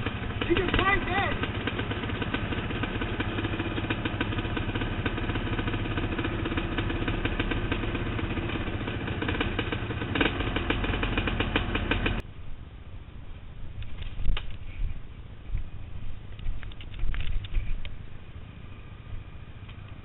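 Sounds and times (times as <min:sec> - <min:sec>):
quad bike engine running: 0:00.0 - 0:12.3.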